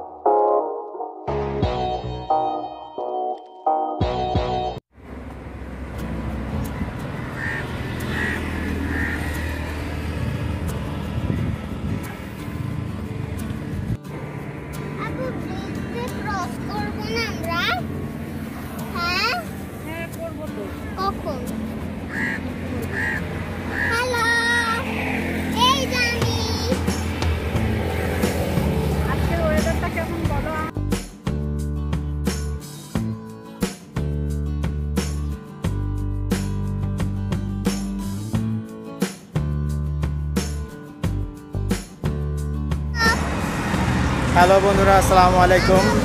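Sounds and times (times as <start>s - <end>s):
background music: 0.0s - 4.8s, 5.8s - 46.0s
road traffic rumble: 4.9s - 31.0s, 39.4s - 46.0s
person talking: 18.8s - 21.6s, 44.3s - 46.0s.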